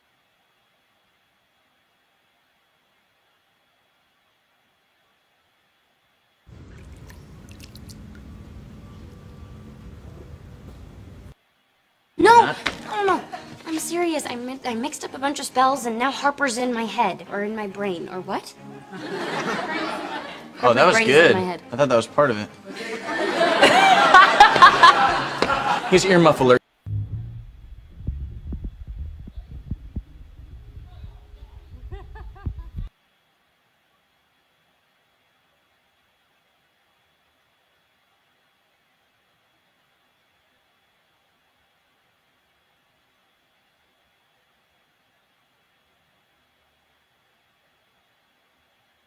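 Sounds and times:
pool water splashing: 6.5s - 11.3s
steady low rumble: 6.5s - 11.4s, 26.9s - 32.9s.

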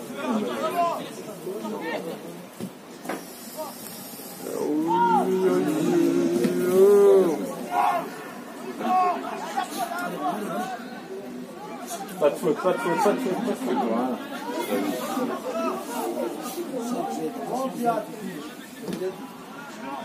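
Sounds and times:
people shouting outdoors: 4.3s - 10.7s, 11.4s - 17.9s
long held shout: 4.4s - 9.2s.

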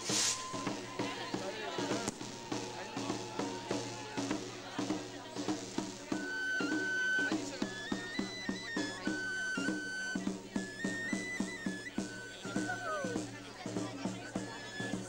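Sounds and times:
shrill pipe playing folk melody: 0.0s - 15.0s
side drum steady beat: 0.0s - 15.0s.

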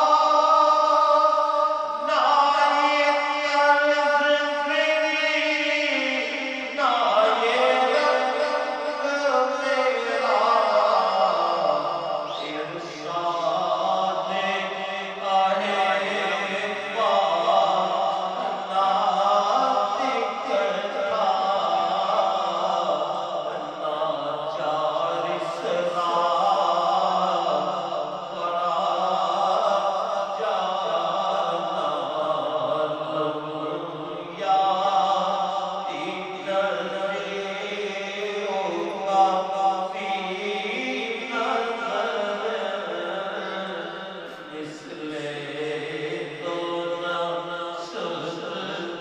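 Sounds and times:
man chanting into microphone: 0.0s - 49.0s.

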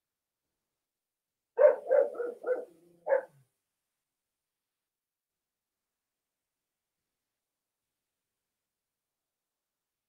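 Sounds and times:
dog barking: 1.6s - 3.4s.

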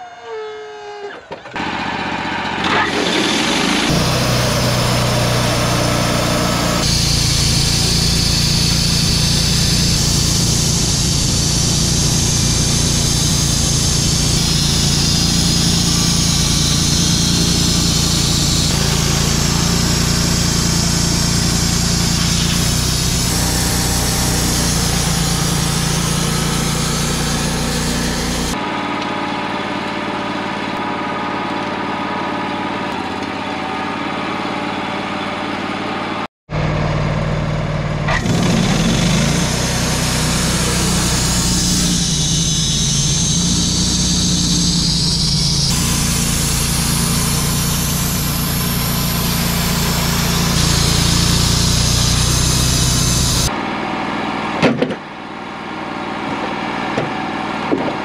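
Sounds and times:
bandsaw mill cutting log: 0.0s - 58.0s.

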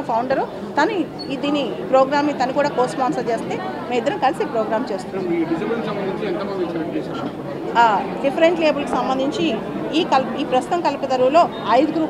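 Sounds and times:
woman talking: 0.0s - 5.0s, 7.7s - 12.0s
chatter in room: 0.0s - 12.0s.

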